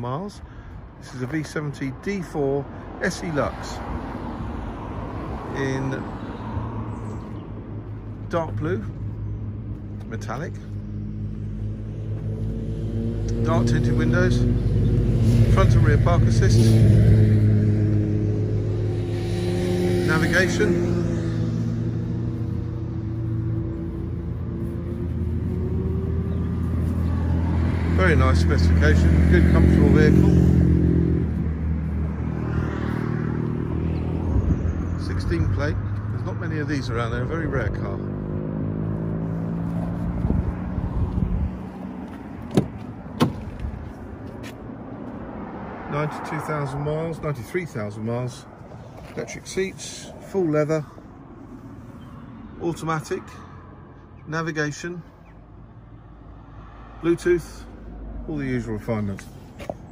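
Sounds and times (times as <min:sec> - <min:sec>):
vehicle engine humming: 0:00.0 - 0:59.9
car door clicks opening: 0:42.4 - 0:43.7.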